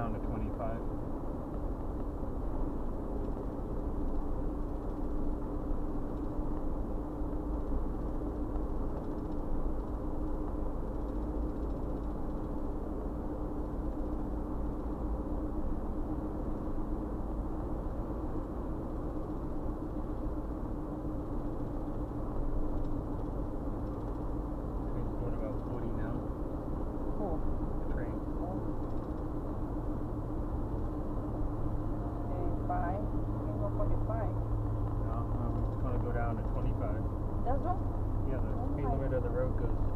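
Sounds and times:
car interior road and engine noise: 0:00.0 - 0:39.9
steady tone: 0:12.6 - 0:39.9.

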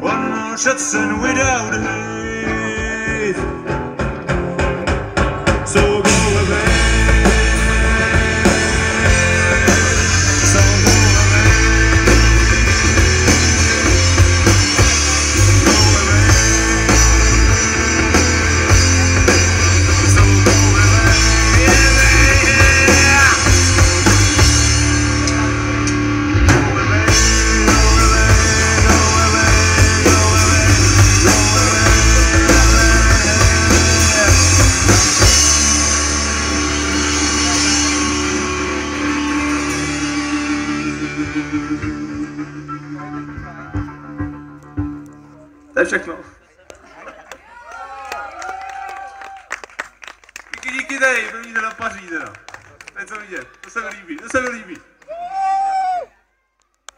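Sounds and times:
electric guitars: 0:00.0 - 0:45.8
drum kit: 0:01.0 - 0:45.0.

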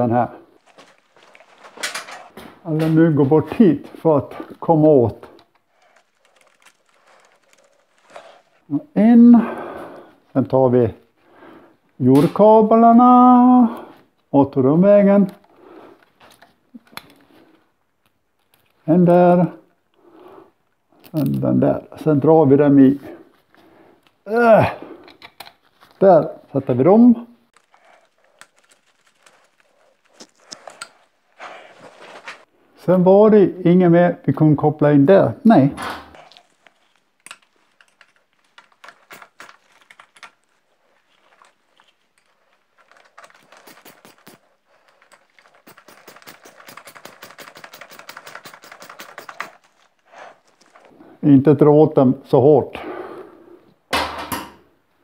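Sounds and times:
handling noises: 0:00.4 - 0:09.0, 0:27.5 - 0:32.6, 0:35.8 - 0:51.2
cable ties ratcheting: 0:05.4 - 0:08.6, 0:36.3 - 0:40.6, 0:41.2 - 0:50.8.

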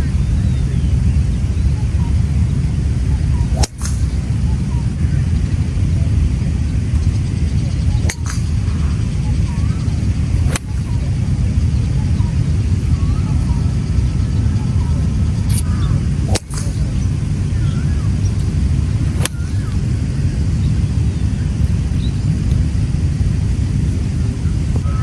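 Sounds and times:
loud steady low rumble: 0:00.0 - 0:25.0
golf iron striking balls: 0:03.4 - 0:04.4, 0:08.0 - 0:09.0, 0:10.2 - 0:11.2, 0:15.5 - 0:19.9.

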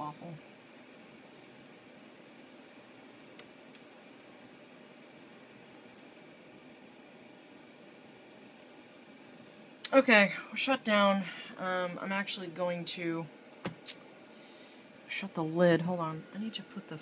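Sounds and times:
laptop cooling fan running: 0:00.0 - 0:17.0.

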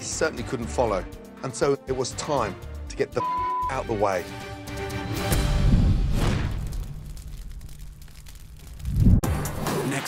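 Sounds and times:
fire crackling: 0:04.6 - 0:10.0.

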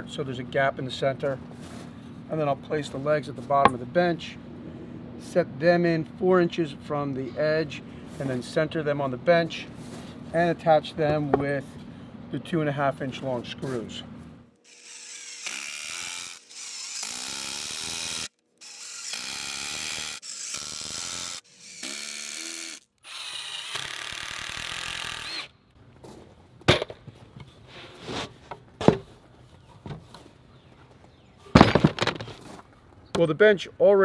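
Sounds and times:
power driver driving screws into wood: 0:14.6 - 0:25.5.

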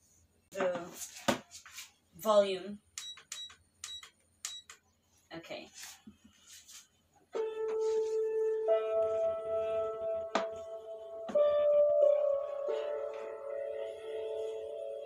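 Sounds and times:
slow calm music: 0:07.4 - 0:15.0.

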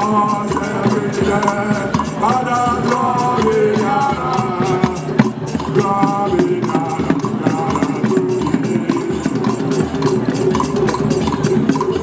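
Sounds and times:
hand drums and wooden percussion: 0:00.0 - 0:12.0.

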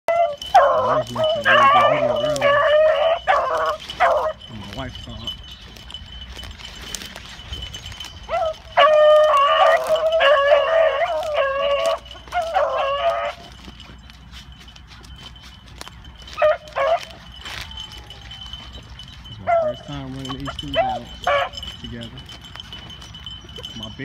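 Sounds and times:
dog barks: 0:00.1 - 0:04.4, 0:08.3 - 0:13.6, 0:16.3 - 0:17.9, 0:19.4 - 0:21.8
dogs baying: 0:00.1 - 0:24.0.

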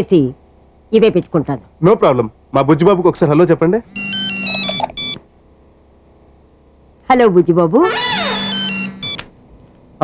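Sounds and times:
electronic ringtone jingle: 0:04.0 - 0:05.2.

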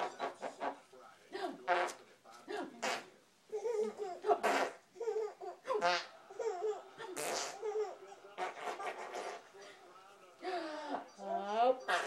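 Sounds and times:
baby laughing: 0:03.5 - 0:09.5.

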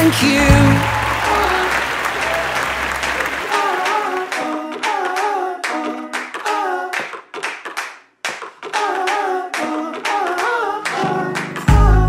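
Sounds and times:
voices singing: 0:00.0 - 0:07.2, 0:08.6 - 0:12.0
rhythmic hand claps: 0:00.0 - 0:12.0.

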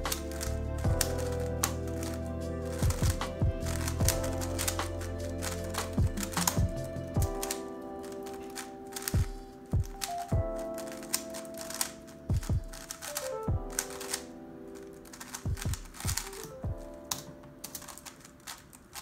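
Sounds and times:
puzzle cube clicking: 0:00.0 - 0:19.0
music with held chords and drums: 0:02.4 - 0:07.5, 0:09.2 - 0:10.6, 0:12.3 - 0:13.8.

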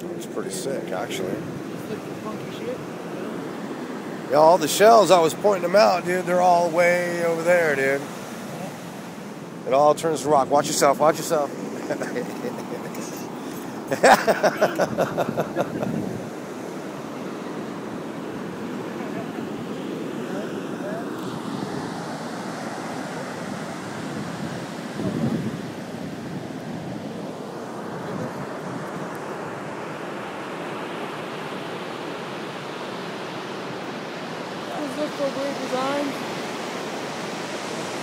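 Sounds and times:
ocean surf breaking: 0:00.0 - 0:38.0
wind on microphone: 0:14.7 - 0:16.5, 0:23.4 - 0:29.2.

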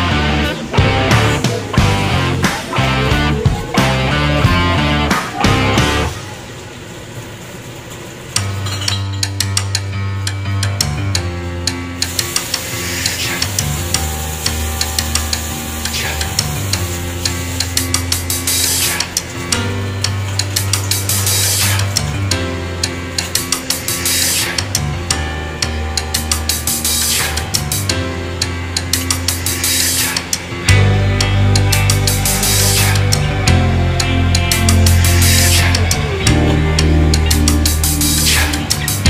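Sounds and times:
music with drum beat and bass: 0:00.0 - 0:06.2, 0:09.3 - 0:39.0.

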